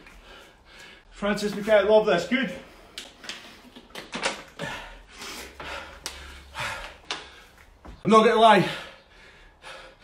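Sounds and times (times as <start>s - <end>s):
heavy breathing: 0.0s - 1.2s, 4.5s - 7.9s, 8.6s - 10.0s.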